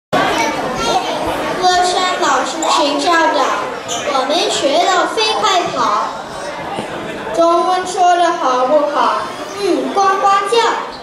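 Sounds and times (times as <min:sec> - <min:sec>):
children talking: 0:00.1 - 0:11.0.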